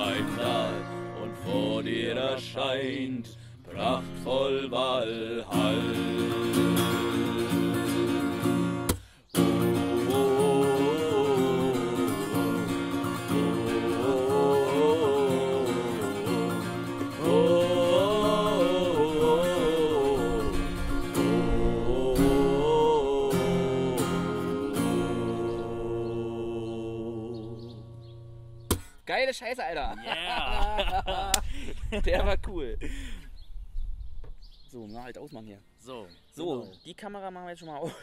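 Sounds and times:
men singing wordless melody: 0.0s - 8.3s, 9.4s - 28.2s
acoustic guitar strumming: 0.0s - 29.0s.

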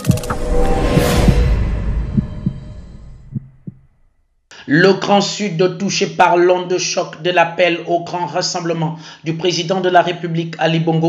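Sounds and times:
news intro jingle hum: 0.0s - 4.0s
soft low beats: 0.0s - 4.0s.

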